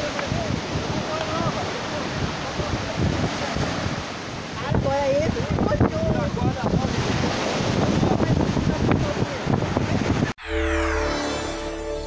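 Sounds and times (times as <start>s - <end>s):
people talking indistinctly: 0.0s - 10.2s
wind rumbling on microphone: 0.0s - 10.4s
surf: 0.0s - 11.5s
music sting with sweeping tones: 10.4s - 12.0s.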